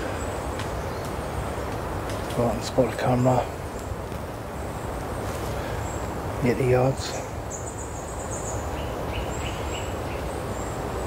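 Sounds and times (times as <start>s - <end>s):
birds calling: 0.0s - 11.0s.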